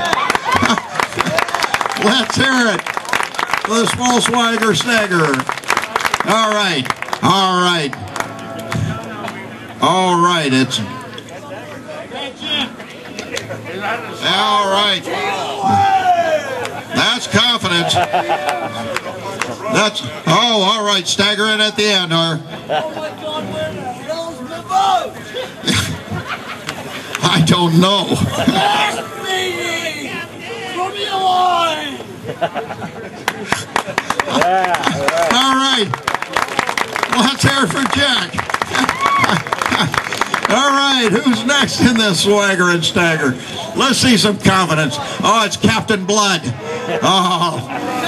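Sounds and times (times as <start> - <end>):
hand claps: 0.0 - 9.4, 33.2 - 42.0
crowd murmur: 0.0 - 48.0
man laughing: 16.6 - 19.3, 22.4 - 23.4, 25.1 - 29.4, 32.1 - 35.3, 38.6 - 40.1, 46.6 - 48.0.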